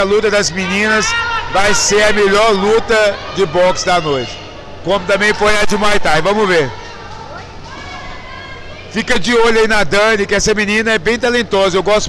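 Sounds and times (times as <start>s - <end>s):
indistinct voices: 0.0s - 9.9s.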